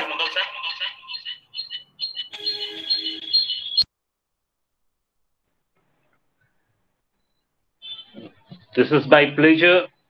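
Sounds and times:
short high electronic beeps: 0.0 - 3.9.

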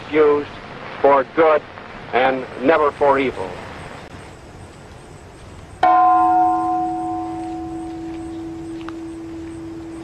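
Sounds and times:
large bell ringing: 5.8 - 10.0
low hum: 5.8 - 10.0.

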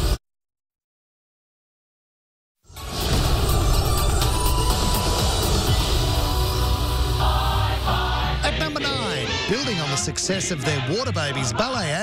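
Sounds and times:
theme music with heavy bass: 2.7 - 12.0.

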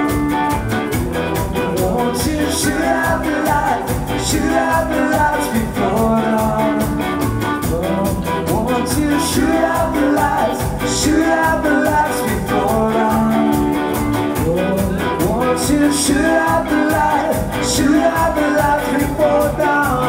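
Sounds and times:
drum kit beat: 0.0 - 20.0
electric guitar: 0.0 - 20.0
upright bass: 0.0 - 20.0.

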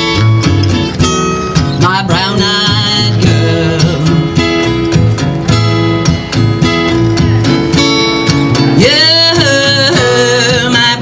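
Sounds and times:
guitar strumming: 0.0 - 11.0.

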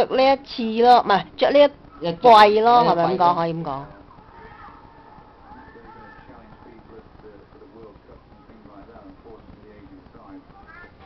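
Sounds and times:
faint high voice: 10.5 - 11.0.

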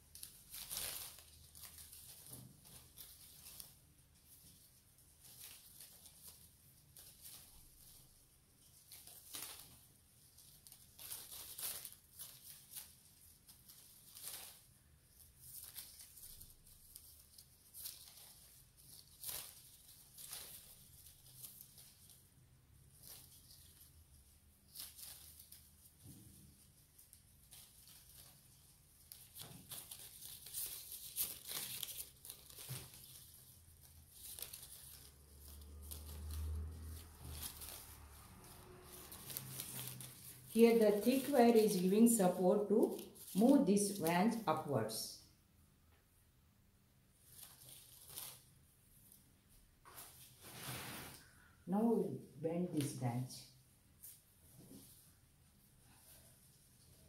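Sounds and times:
leaves rustling: 0.0 - 44.8, 47.2 - 49.2
wire scratching on bark: 5.2 - 44.4.

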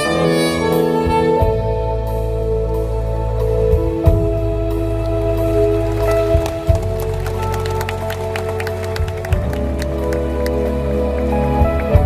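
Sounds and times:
electric bass: 0.0 - 12.0.

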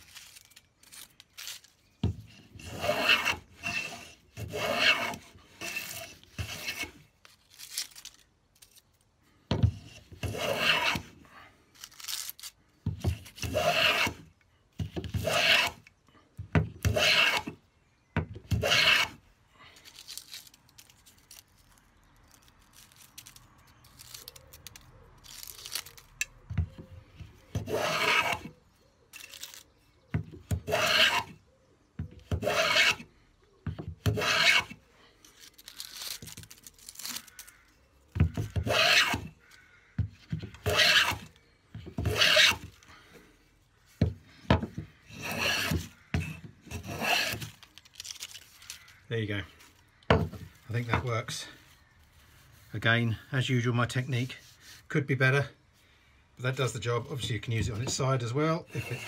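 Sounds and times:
plane shaving wood: 2.3 - 7.0, 10.2 - 11.1, 13.2 - 14.2, 15.0 - 15.8, 16.8 - 17.5, 18.5 - 19.2, 27.5 - 28.5, 30.4 - 31.4, 32.2 - 33.1, 34.0 - 34.8, 38.3 - 39.4, 40.2 - 42.7, 45.0 - 47.5, 58.6 - 59.0.

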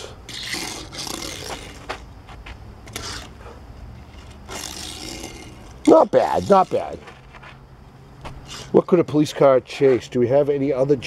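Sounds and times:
metal toy car scraping: 2.8 - 7.5.

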